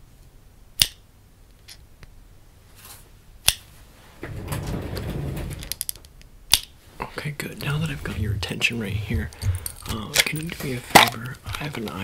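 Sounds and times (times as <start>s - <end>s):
rustle of hands and clothing: 2.6s - 5.6s.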